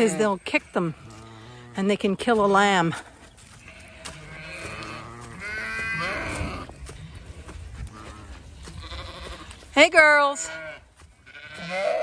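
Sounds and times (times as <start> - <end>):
sheep bleating: 0.0 - 2.0, 3.5 - 6.8, 7.9 - 9.6, 10.2 - 12.0.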